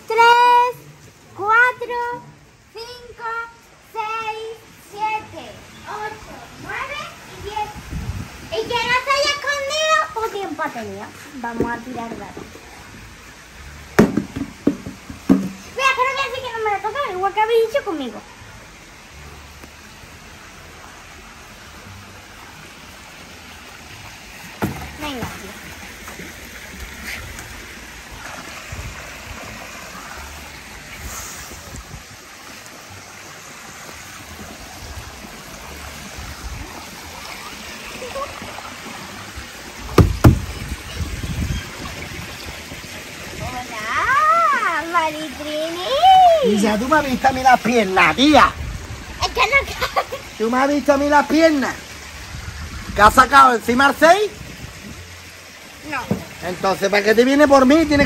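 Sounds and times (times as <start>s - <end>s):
child's voice: 0.0s - 7.9s, 8.5s - 11.1s, 15.7s - 18.2s, 25.0s - 25.6s, 43.4s - 46.5s, 49.2s - 50.2s
wind buffeting microphone: 7.3s - 9.3s, 40.0s - 43.7s, 48.3s - 49.9s, 52.2s - 53.3s
die knocking on tiled floor: 14.0s - 15.6s, 40.0s - 40.5s
sharp loud thumps: 14.0s - 15.7s, 40.0s - 40.6s.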